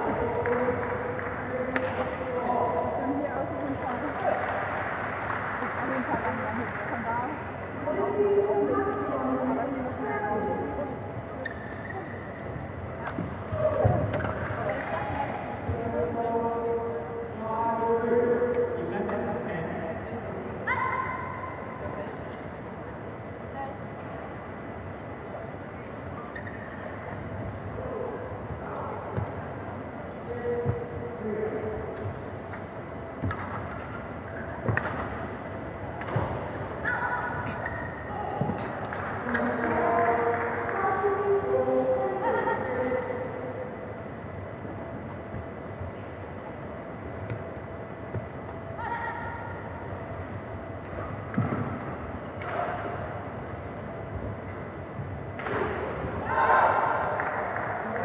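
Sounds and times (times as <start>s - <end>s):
voices talking: 0.0s - 51.4s.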